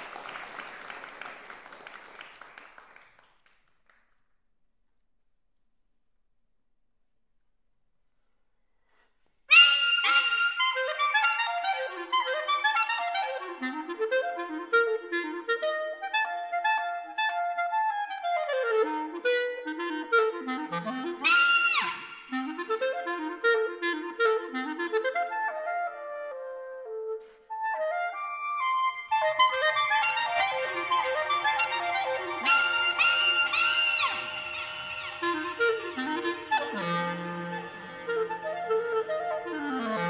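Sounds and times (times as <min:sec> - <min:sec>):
clarinet playing: 0:09.5 - 0:40.0.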